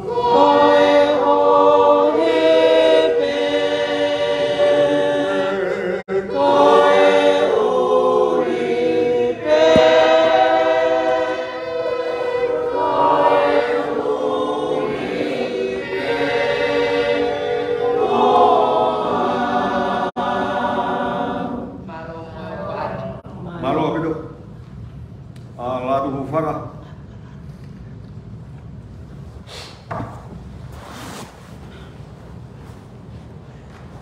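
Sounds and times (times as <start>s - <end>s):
choir singing a hymn: 0.0s - 23.3s.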